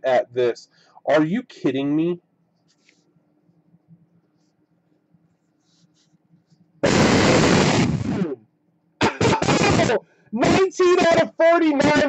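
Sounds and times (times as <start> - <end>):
explosion sound effect: 6.8 - 8.4.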